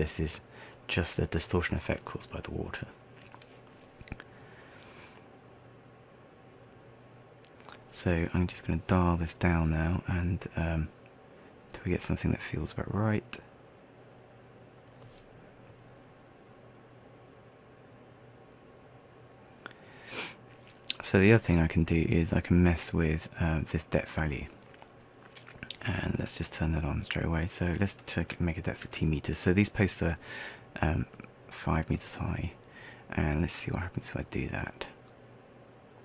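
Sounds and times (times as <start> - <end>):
low electrical hum: 0.0 - 36.0
person breathing in: 30.2 - 30.7.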